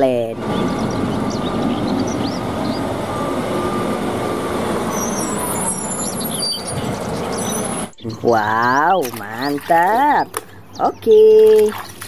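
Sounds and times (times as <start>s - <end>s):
diesel truck engine running: 0.0s - 11.0s.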